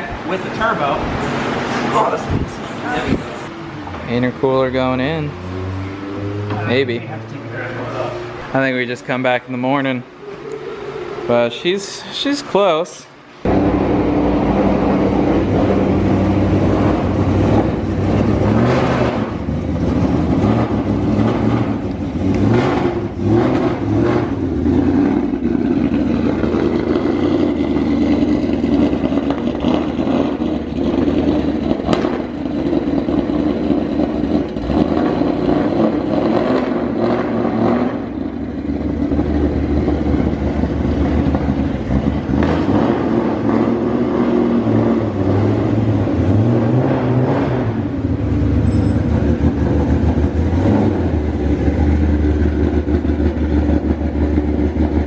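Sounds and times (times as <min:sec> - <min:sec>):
car engine revving: 0:00.6 - 0:12.2, 0:13.4 - 0:55.0.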